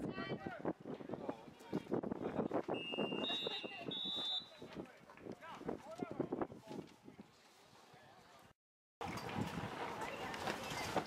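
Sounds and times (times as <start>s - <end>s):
referees' whistles: 2.7s - 4.6s.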